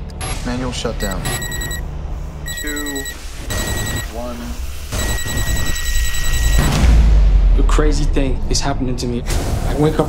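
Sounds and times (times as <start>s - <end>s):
electronic timer beep: 1.0s - 1.8s, 2.5s - 4.1s, 4.9s - 6.8s.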